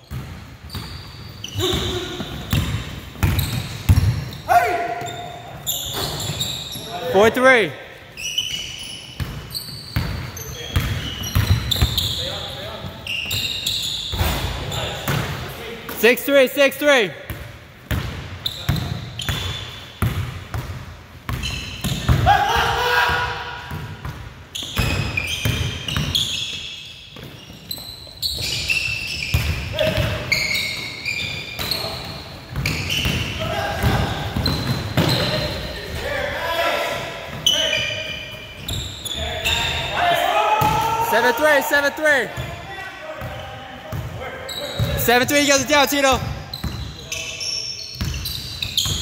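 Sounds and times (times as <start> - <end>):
sneakers squeaking: 0.0 - 22.4, 23.0 - 49.0
players calling out: 1.2 - 8.9, 21.5 - 23.8, 29.7 - 47.6.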